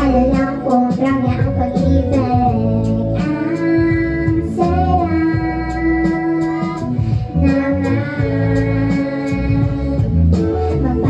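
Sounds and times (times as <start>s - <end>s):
backing music: 0.0s - 11.0s
woman singing into a microphone: 0.0s - 11.0s.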